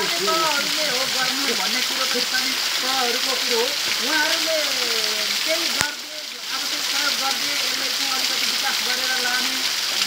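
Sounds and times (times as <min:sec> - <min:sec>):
man talking: 0:00.0 - 0:03.4
waterfall pouring onto rocks: 0:00.0 - 0:10.0.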